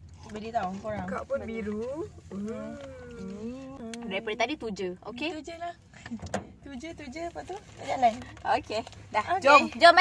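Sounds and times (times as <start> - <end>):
woman humming: 2.3 - 4.2.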